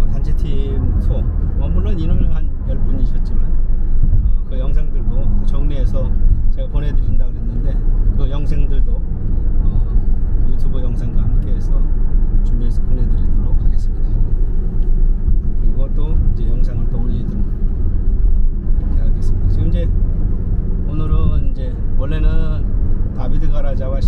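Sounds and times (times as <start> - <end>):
car engine and tyre rumble: 0.0 - 24.0.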